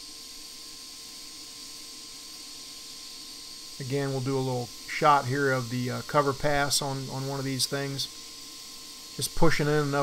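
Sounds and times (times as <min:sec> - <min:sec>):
faint steady whine: 0:00.0 - 0:10.0
welding arc hissing: 0:00.0 - 0:10.0.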